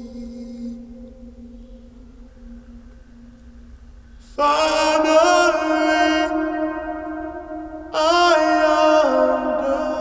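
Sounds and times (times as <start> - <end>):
low chanted note: 0.0 - 3.8, 4.4 - 10.0.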